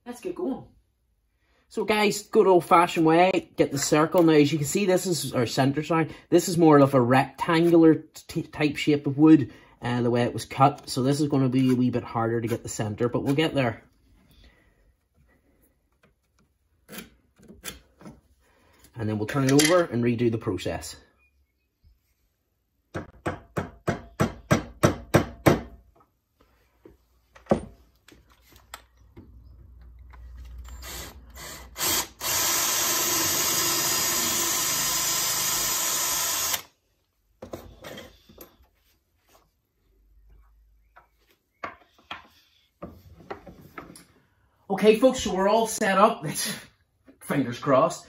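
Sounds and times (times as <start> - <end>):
cordless drill boring wood: 30.7 - 36.7.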